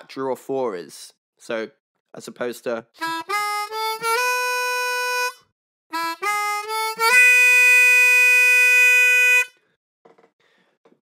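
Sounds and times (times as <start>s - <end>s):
blues harmonica playing: 3.0s - 9.6s.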